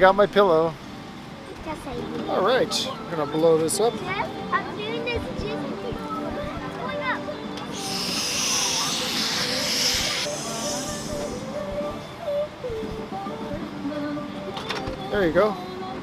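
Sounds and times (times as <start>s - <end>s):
air hissing into pillow valve: 7.7s - 11.7s.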